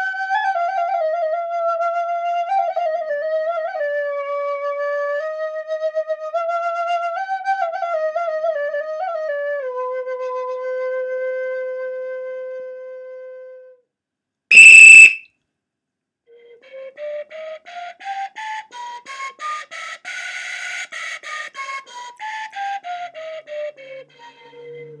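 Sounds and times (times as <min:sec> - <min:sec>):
recorder held note: 0:14.5 - 0:15.2
recorder playing a scale: 0:14.5 - 0:15.2
shrill whistle blast: 0:14.5 - 0:15.2.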